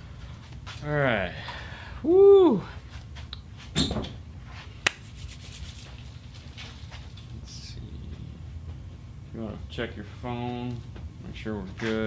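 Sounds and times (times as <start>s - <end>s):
low rumble of room noise: 0.0s - 12.0s.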